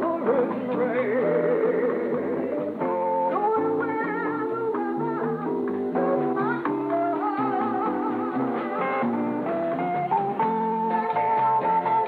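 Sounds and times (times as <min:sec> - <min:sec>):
band music with bass and guitar: 0:00.0 - 0:12.0.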